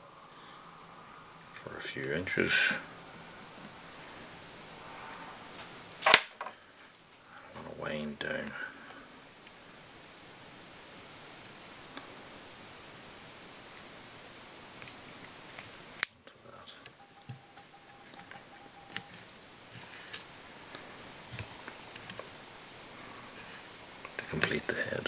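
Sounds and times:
room hiss: 0.0s - 25.0s.

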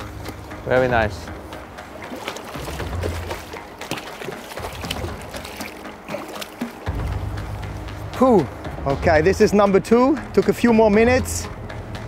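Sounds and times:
fish thrashing water splashing: 1.8s - 7.2s.

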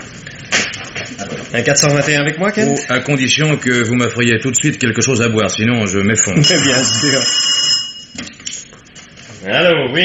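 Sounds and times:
telephone bell ringing: 6.4s - 8.3s.

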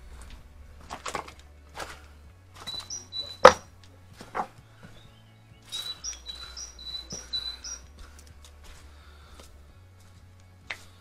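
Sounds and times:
small bird singing: 2.6s - 8.2s.

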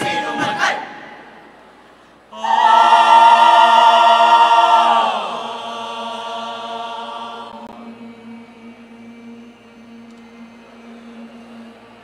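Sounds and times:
faint hall noise: 0.0s - 12.0s
steady low hum: 0.7s - 12.0s.

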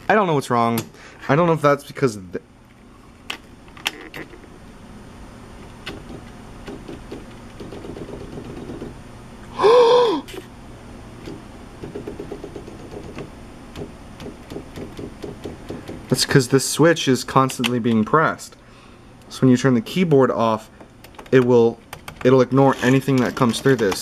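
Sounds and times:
electronic typewriter humming: 5.6s - 9.0s, 11.2s - 16.4s, 21.0s - 24.0s.

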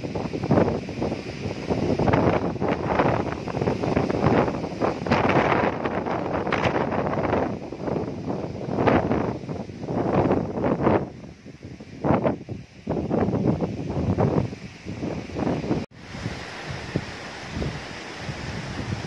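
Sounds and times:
storm wind gusts: 0.0s - 19.0s
wind buffeting microphone: 0.0s - 19.0s.

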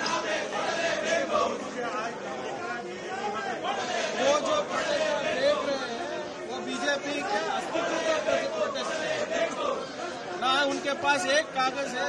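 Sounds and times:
voices talking over one another: 0.0s - 12.0s.

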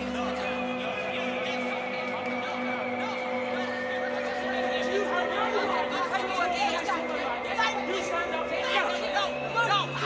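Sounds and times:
voices shouting and arguing: 0.0s - 10.0s.

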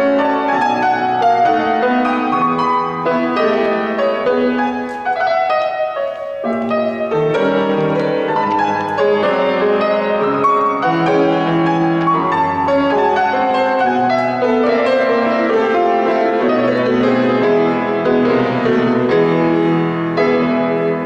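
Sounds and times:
grand piano playing: 0.0s - 21.0s.

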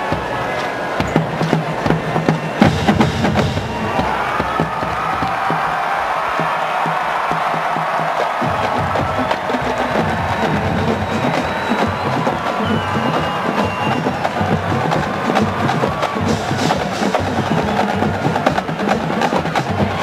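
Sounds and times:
stadium crowd noise: 0.0s - 20.0s
bass drums: 1.0s - 20.0s
snare drums playing: 1.0s - 20.0s.

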